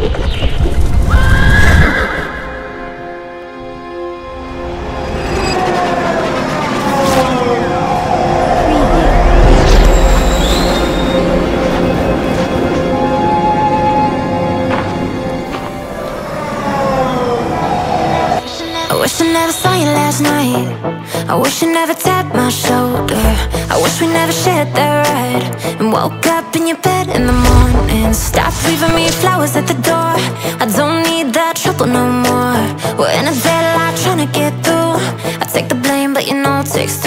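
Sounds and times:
cinematic music: 2.0s - 21.1s, 26.9s - 30.5s
train whine: 2.4s - 19.8s, 27.1s - 29.3s
heavy low rumble: 4.5s - 18.0s, 27.0s - 29.8s.

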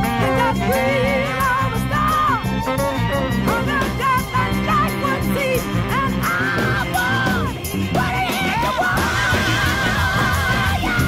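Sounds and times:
funk music with wailing melody: 0.0s - 11.0s.

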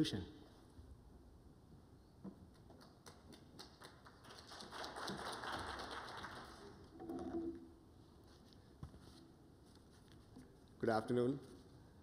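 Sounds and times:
audience applause: 3.0s - 6.9s.

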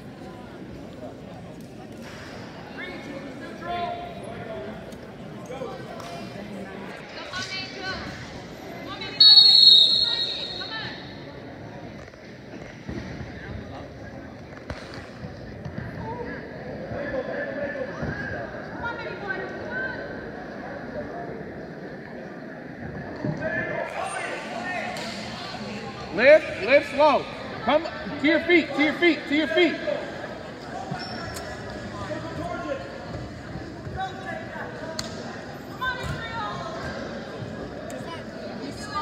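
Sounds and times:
spectators shouting and chattering: 0.0s - 39.0s
referee's whistle: 9.2s - 11.2s.

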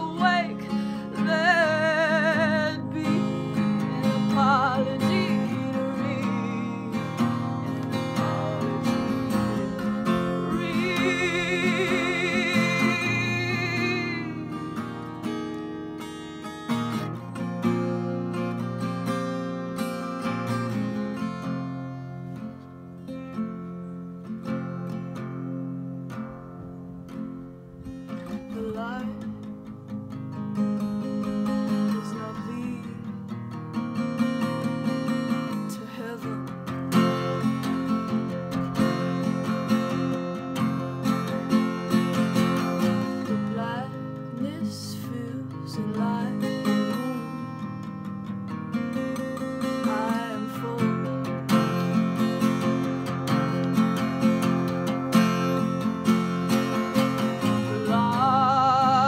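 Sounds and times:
woman singing with vibrato: 0.0s - 16.1s, 28.2s - 29.5s, 31.7s - 33.4s, 35.3s - 37.3s, 42.6s - 48.2s, 49.6s - 51.9s, 56.7s - 59.0s
acoustic guitar chords: 0.0s - 59.0s.

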